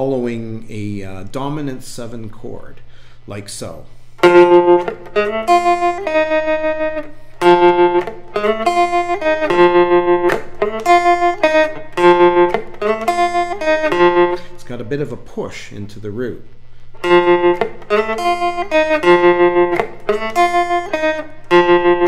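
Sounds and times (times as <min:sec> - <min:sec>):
electric guitar blues melody: 0:03.9 - 0:22.0.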